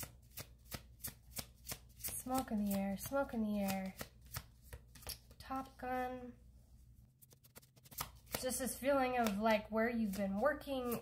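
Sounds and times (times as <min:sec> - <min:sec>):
cards being shuffled: 0:00.0 - 0:05.7, 0:07.2 - 0:11.0.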